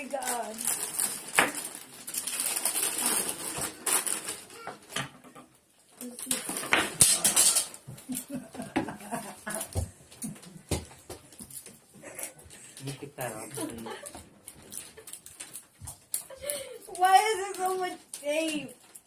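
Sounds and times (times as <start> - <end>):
wrapping paper crinkling: 0.0 - 5.0, 11.4 - 19.0.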